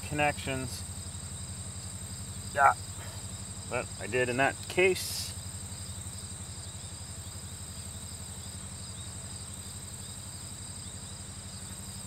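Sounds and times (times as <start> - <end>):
crickets chirring: 0.0 - 12.0
low steady hum: 0.0 - 12.0.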